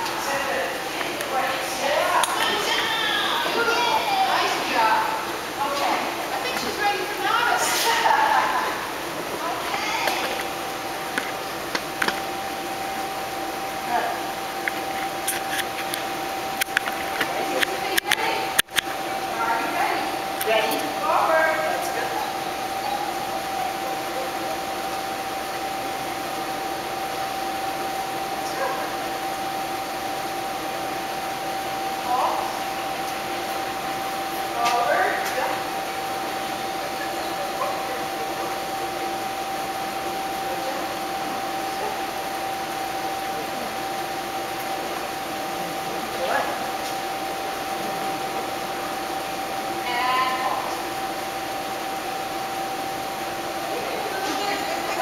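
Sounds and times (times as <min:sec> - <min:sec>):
steady high-pitched hum: 0:00.0 - 0:55.0.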